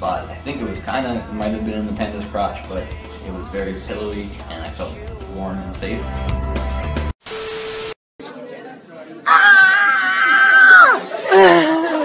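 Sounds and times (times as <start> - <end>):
music with voice: 0.0 - 7.1.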